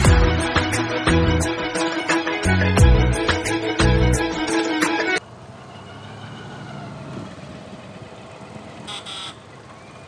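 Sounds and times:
traffic engine and road rumble: 0:02.6 - 0:10.0.

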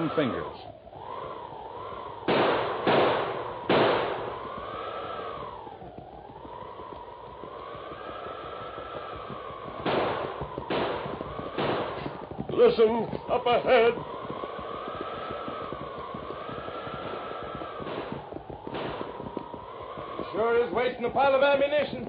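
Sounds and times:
howling storm wind: 0:00.0 - 0:22.0.

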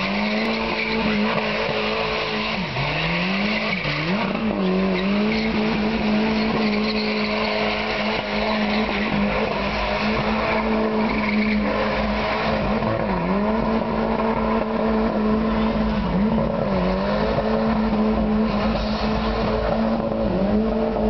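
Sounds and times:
tyres squealing on pavement: 0:00.0 - 0:13.4
car engine revving: 0:00.0 - 0:21.0.

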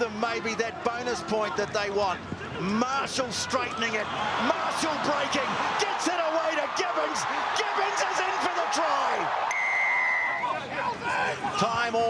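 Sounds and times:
excited commentator talking: 0:00.0 - 0:09.3, 0:10.7 - 0:12.0
stadium crowd noise: 0:00.0 - 0:12.0
referee's whistle blast: 0:09.5 - 0:10.5.

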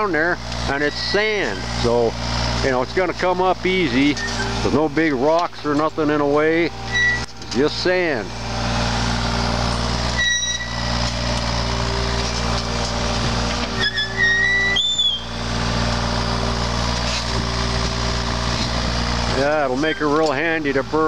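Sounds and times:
excavator diesel engine running: 0:00.0 - 0:21.0
short high-pitched squeals: 0:04.1 - 0:04.7, 0:06.8 - 0:07.3, 0:10.0 - 0:11.1, 0:13.6 - 0:15.5.

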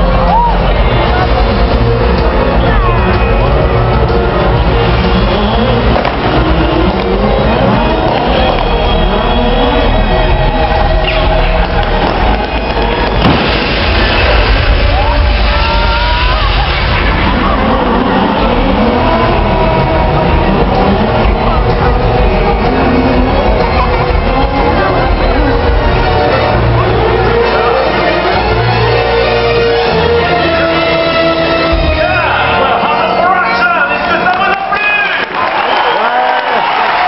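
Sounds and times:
car engines revving: 0:00.0 - 0:34.6.

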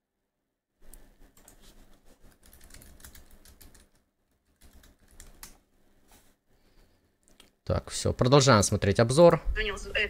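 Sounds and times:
computer keyboard typing: 0:02.3 - 0:05.6.

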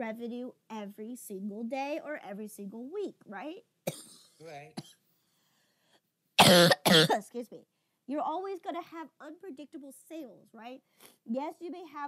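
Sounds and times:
woman coughing: 0:03.9 - 0:05.0, 0:06.4 - 0:07.2.

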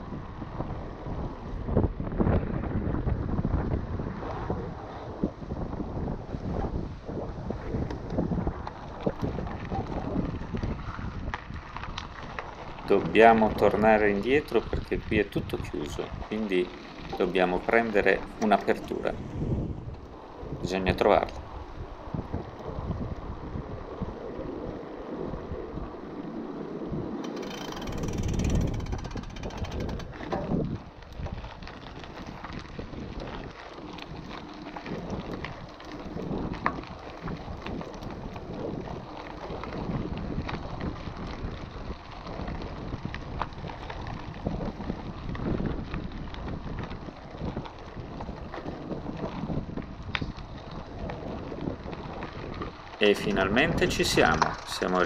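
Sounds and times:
bike tyres crunching: 0:00.0 - 0:55.0
wind buffeting microphone: 0:00.0 - 0:55.0
bike clicks and rattles: 0:05.6 - 0:23.3, 0:27.0 - 0:55.0.

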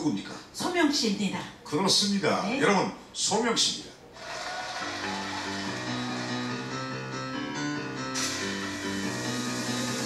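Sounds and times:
audience applauding: 0:04.2 - 0:07.5
instrumental music with held notes: 0:04.8 - 0:10.0.

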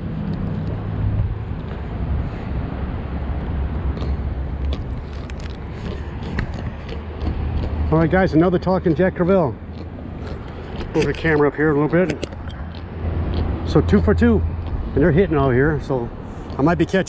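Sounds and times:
road traffic rumble: 0:00.0 - 0:17.0.

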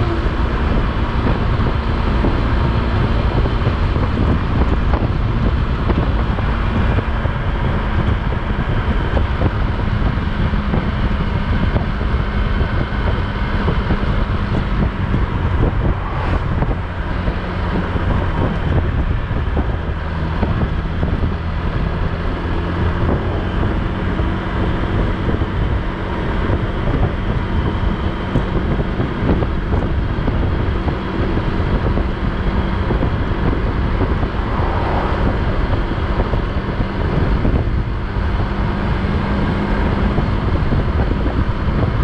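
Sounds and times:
motorcycle engine running: 0:00.0 - 0:42.0
wind rushing over microphone: 0:00.0 - 0:42.0.

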